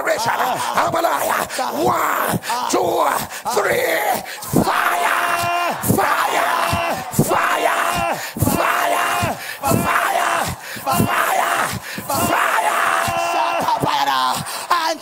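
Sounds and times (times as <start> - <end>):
voices shouting: 0.0 - 15.0.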